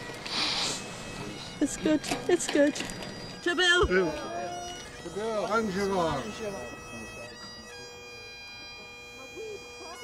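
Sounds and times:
bagpipes holding a note: 0.0s - 10.0s.

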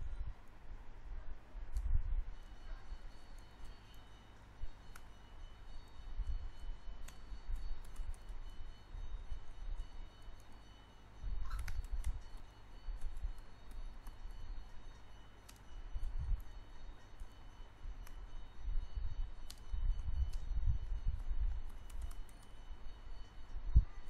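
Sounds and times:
faint low rumble: 0.0s - 24.0s
computer keyboard key clicks: 11.5s - 12.4s, 21.7s - 22.5s.

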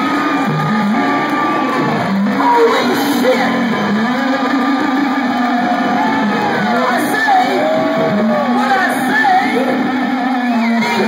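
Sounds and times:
electric guitar: 0.0s - 11.0s.

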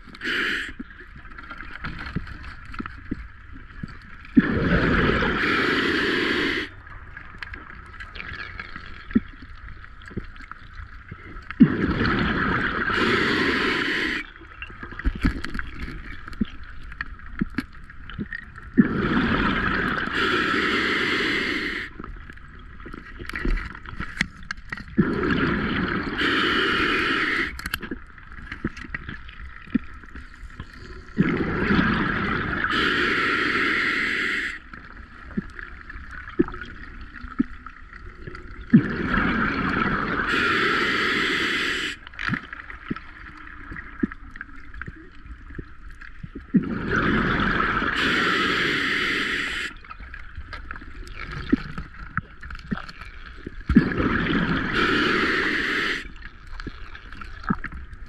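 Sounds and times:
quiet inhalations: 0.0s - 1.1s, 5.1s - 6.9s, 12.8s - 14.5s, 19.9s - 22.2s, 26.0s - 27.8s, 30.1s - 31.2s, 32.6s - 35.0s, 40.1s - 42.3s, 47.8s - 50.0s, 54.5s - 56.3s
diver exhaling bubbles: 4.4s - 6.7s, 11.6s - 14.3s, 18.8s - 21.9s, 25.0s - 27.6s, 31.2s - 34.6s, 38.3s - 41.9s, 46.5s - 49.8s, 53.7s - 56.2s.

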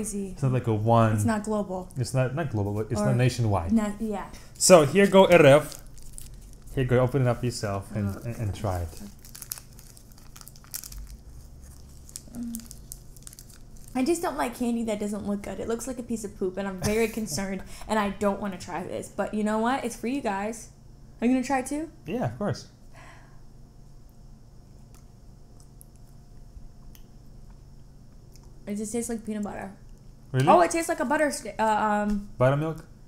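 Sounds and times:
low room hum: 0.0s - 33.0s
candy wrapper crinkling: 4.6s - 6.9s, 7.6s - 14.0s
person chewing candy: 8.2s - 14.0s, 24.7s - 28.6s.

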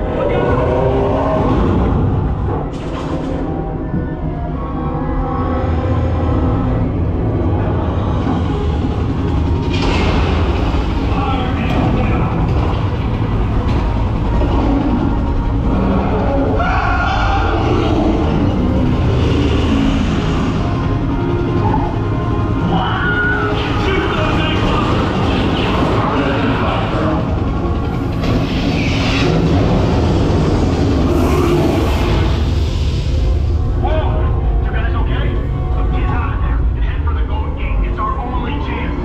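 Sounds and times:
loud low rumble: 0.0s - 39.0s
fire and aircraft sound effects: 6.9s - 39.0s
hissing swells: 27.9s - 34.6s.

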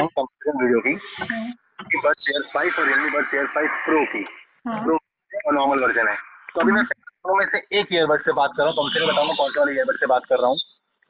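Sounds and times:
voice over phone line: 0.0s - 10.6s.

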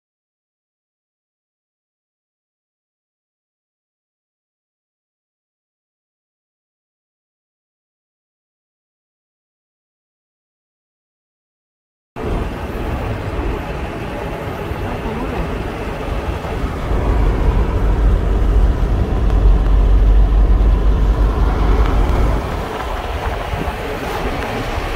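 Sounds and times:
car road and engine noise: 12.2s - 24.9s
heavy low rumble: 12.2s - 24.9s.

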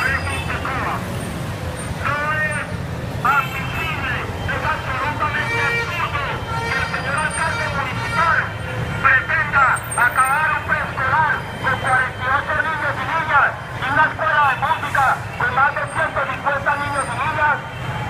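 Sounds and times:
street traffic rumble: 0.0s - 18.0s.

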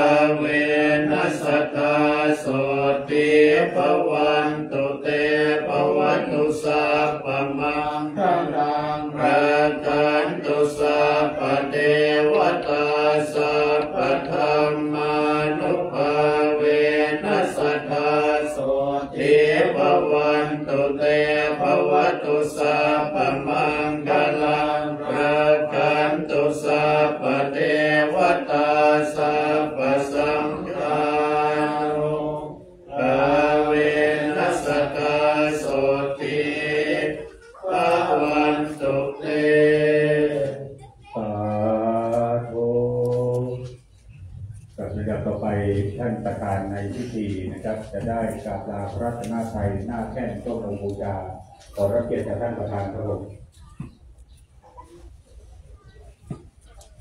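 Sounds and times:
monks chanting together: 0.0s - 53.4s.

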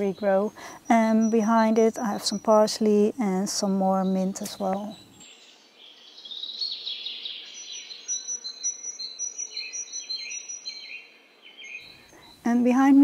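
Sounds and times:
songbirds singing: 0.0s - 13.0s.

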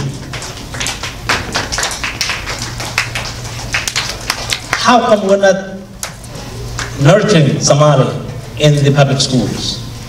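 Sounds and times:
audience clapping: 0.0s - 7.0s.

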